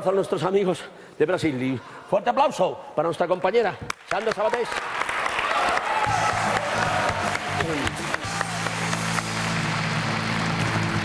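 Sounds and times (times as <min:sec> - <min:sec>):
studio audience applauding: 0:03.9 - 0:11.0.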